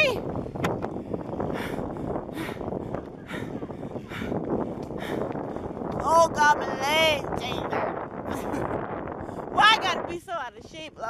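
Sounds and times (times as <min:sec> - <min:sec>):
bicycle riding noise: 0:00.0 - 0:11.0
wind rushing over microphone: 0:00.0 - 0:11.0.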